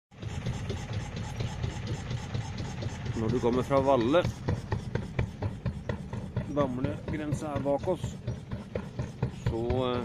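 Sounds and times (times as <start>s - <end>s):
boat motor droning: 0.1s - 10.0s.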